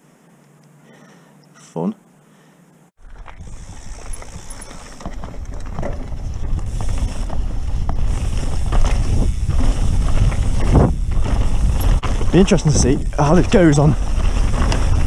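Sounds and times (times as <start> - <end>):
bike rattling and clicking: 3.0 - 15.0
bike tyres rolling on dirt: 3.0 - 15.0
wind rumbling on microphone: 3.0 - 15.0.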